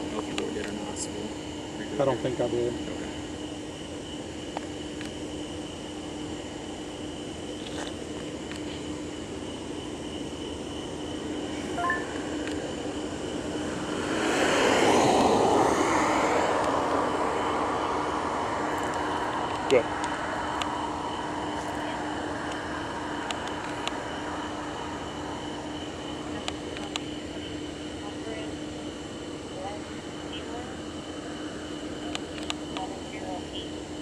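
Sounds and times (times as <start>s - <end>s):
steady background hum: 0.0s - 34.0s
short beep: 11.8s - 12.2s
vehicle passing on road: 12.1s - 26.4s.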